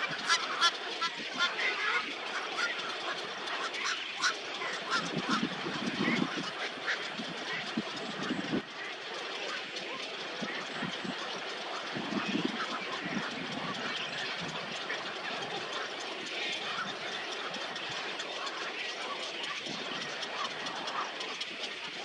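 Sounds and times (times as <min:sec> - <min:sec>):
waterbirds calling: 0:00.0 - 0:22.0.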